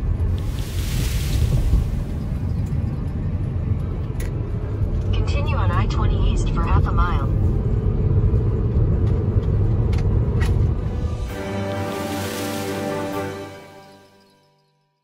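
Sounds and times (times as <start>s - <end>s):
car interior road noise: 0.0s - 11.2s.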